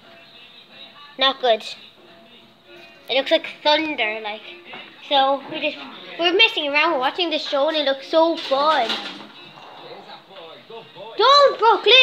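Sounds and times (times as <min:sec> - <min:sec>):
faint television voices: 0:02.7 - 0:12.0.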